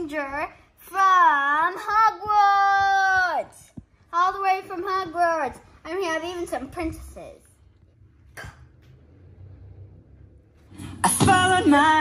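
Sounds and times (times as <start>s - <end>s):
faint low hum: 4.0s - 12.0s.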